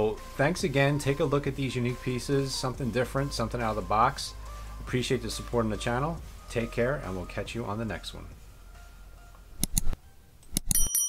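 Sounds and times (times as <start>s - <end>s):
mouse clicks: 9.6s - 10.8s
notification bell ding: 10.7s - 11.0s.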